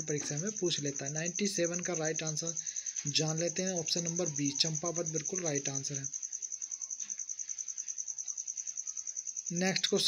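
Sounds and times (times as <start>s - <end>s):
cricket trilling: 0.0s - 10.0s.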